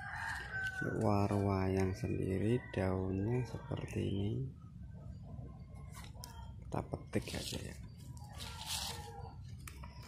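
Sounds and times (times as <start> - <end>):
leaves rustling: 7.2 - 9.8.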